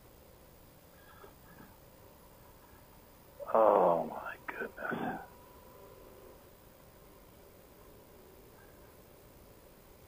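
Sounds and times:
faint background hiss: 0.0s - 10.0s
man's wordless utterance: 3.4s - 5.3s.

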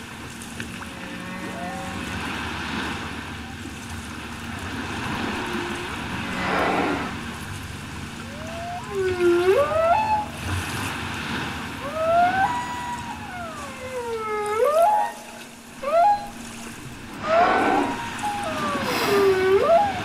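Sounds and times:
steady water hiss: 0.0s - 20.0s
whale moans sliding in pitch: 0.6s - 2.6s, 4.4s - 20.0s.

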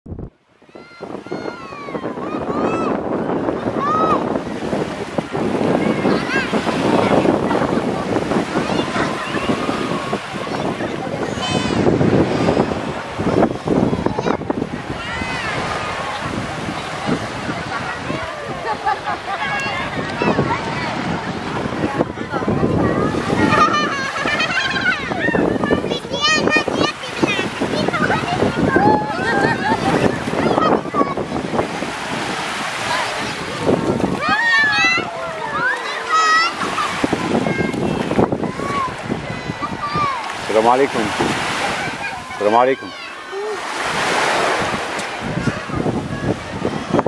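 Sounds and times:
wind buffeting microphone: 0.0s - 47.0s
surf: 0.1s - 47.0s
small waves on sand: 0.2s - 47.0s
people calling out: 1.0s - 46.6s.

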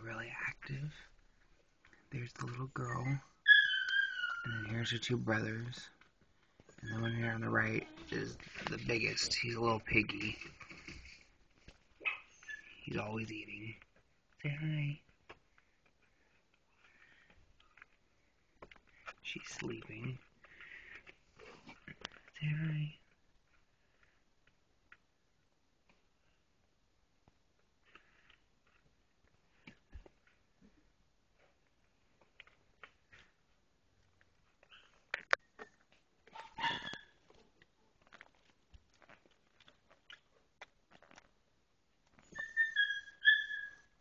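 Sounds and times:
puppies squeaking: 3.4s - 4.9s, 6.7s - 8.2s, 12.0s - 12.9s, 36.3s - 37.3s, 42.2s - 44.0s
high-pitched dog whine: 3.5s - 4.7s, 36.4s - 37.2s, 42.2s - 44.0s
puppies suckling soft clicks: 15.1s - 19.2s, 23.0s - 42.2s.

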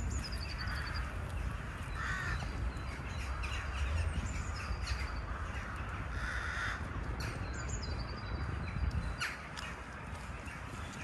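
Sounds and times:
crow cawing: 2.0s - 2.4s, 6.2s - 6.8s.

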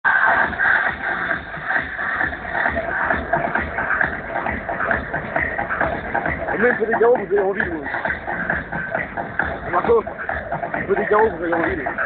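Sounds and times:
loud electronic dance music: 0.0s - 12.0s
kick-drum beat: 0.2s - 12.0s.

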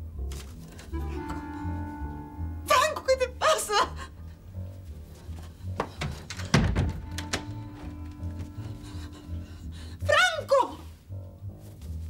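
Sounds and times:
dramatic background music: 0.8s - 11.6s
heavy thump against wooden door: 6.0s - 7.6s
door handle clicks and knocks: 6.0s - 8.0s.

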